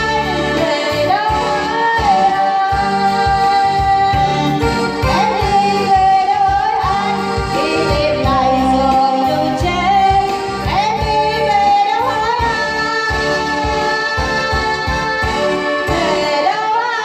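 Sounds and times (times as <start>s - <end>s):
electronic keyboard with steady beat: 0.0s - 17.0s
woman singing into a microphone: 0.0s - 17.0s.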